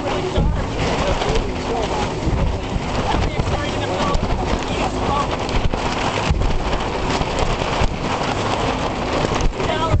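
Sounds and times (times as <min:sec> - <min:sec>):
boat engine: 0:00.0 - 0:10.0
hull thumping on waves: 0:00.0 - 0:10.0
wind buffeting microphone: 0:00.0 - 0:10.0.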